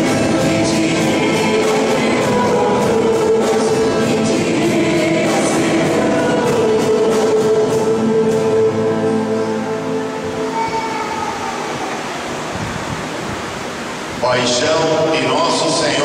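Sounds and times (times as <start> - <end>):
choir singing a hymn: 0.0 - 13.0
man speaking: 14.2 - 16.0.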